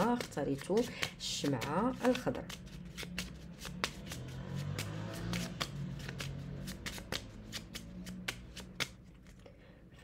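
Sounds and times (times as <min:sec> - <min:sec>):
playing cards shuffled: 0:00.0 - 0:09.4.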